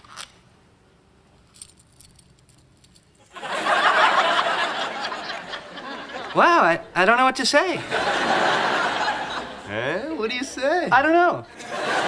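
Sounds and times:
chain bracelet jingling: 1.4s - 3.3s.

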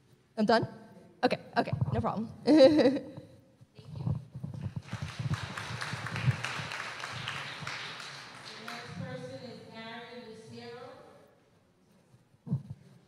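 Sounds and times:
audience applause: 4.8s - 9.0s.

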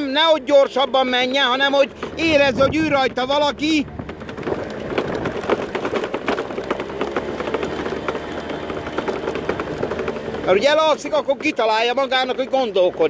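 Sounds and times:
vehicle engine running: 0.0s - 13.0s
rattling and knocking: 0.9s - 13.0s.

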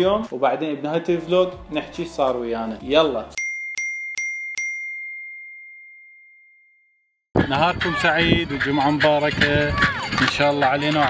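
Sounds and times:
bell-like ding: 3.4s - 6.9s.

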